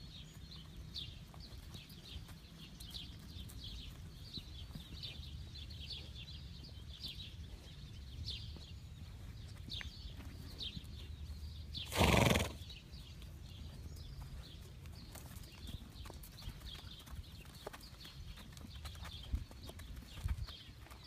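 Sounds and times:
hoof steps on dirt: 0.0 - 21.0
horse snorting: 11.9 - 12.7.

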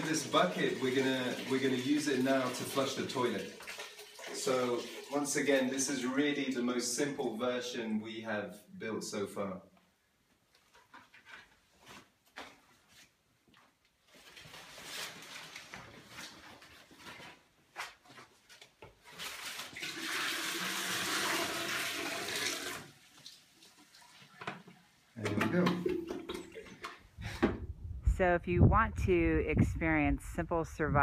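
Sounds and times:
water pouring into toilet bowl: 0.0 - 7.0, 19.2 - 27.0.

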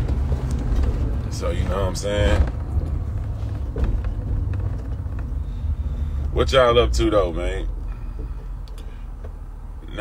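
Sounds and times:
car cabin engine and road noise: 0.0 - 10.0.

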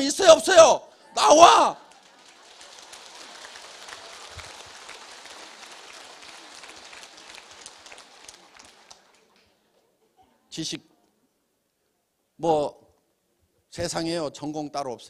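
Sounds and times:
audience applauding: 1.2 - 9.5.

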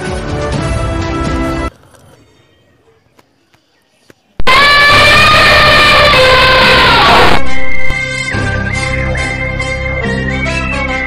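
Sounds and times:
long horn blast: 4.4 - 8.0.

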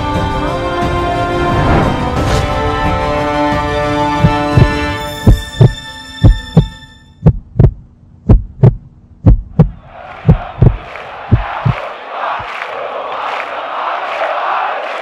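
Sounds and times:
heartbeat thumps: 4.2 - 11.8
crowd noise: 9.7 - 15.0.

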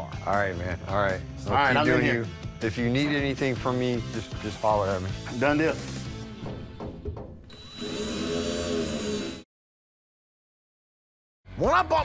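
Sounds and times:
background music: 0.0 - 7.5
cordless drill whirring: 7.5 - 9.5.

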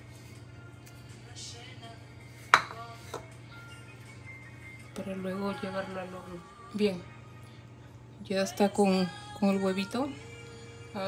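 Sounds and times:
faint background music: 0.0 - 11.0
ceramic bowl clinking on stone: 2.5 - 3.3.

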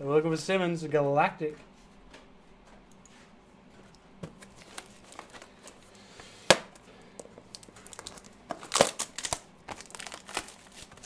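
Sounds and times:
card pack wrapper crinkling: 4.4 - 5.8, 7.4 - 11.0.

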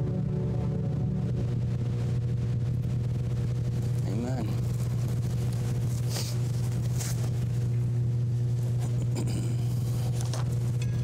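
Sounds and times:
keyboard chord: 0.0 - 2.7
low electrical hum: 0.0 - 11.0.

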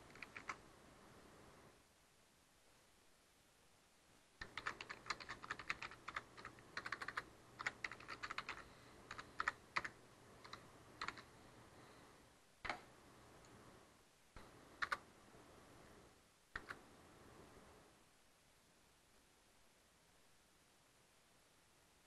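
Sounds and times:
faint keyboard typing: 0.0 - 0.6, 4.4 - 11.4, 12.6 - 13.6, 14.4 - 15.1, 16.5 - 16.8.

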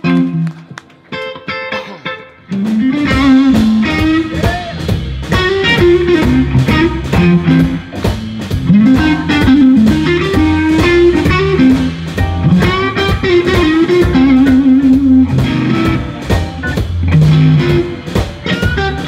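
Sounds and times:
electric guitar lead lines: 0.0 - 19.0
organ: 0.0 - 19.0
steady drum beat: 2.4 - 19.0.

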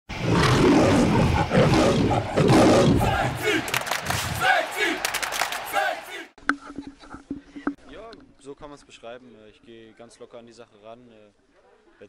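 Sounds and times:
lion roaring: 0.1 - 3.4.

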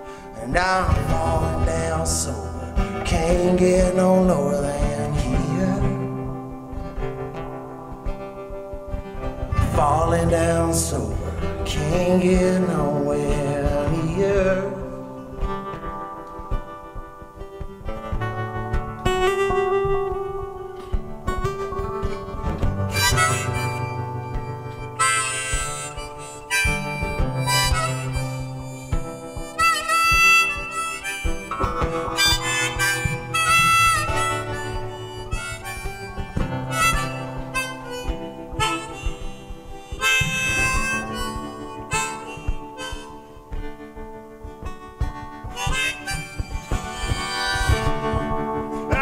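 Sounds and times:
harmonica melody with bent notes: 0.0 - 49.0
strummed acoustic guitar: 0.0 - 49.0.

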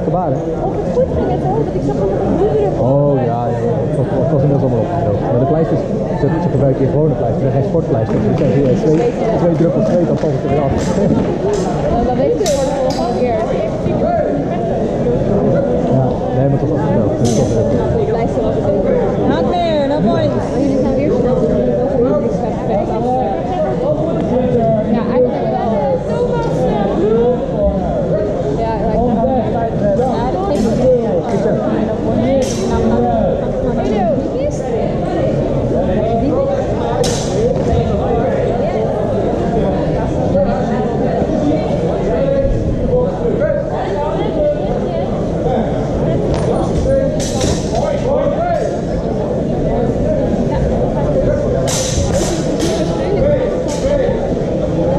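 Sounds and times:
people talking over one another: 0.0 - 54.9.

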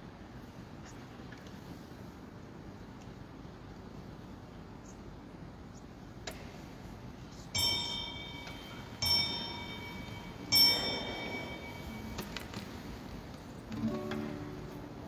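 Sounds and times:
altar bell ringing: 7.6 - 12.7.

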